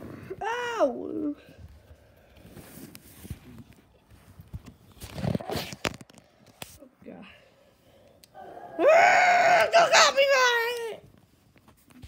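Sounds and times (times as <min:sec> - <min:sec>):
camera handling against fabric: 0:02.4 - 0:06.8.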